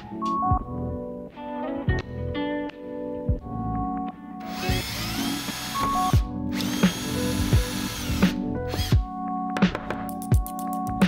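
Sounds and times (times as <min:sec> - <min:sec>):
background music with steady beat: 0:00.0 - 0:11.0
cordless drill running: 0:04.4 - 0:08.9.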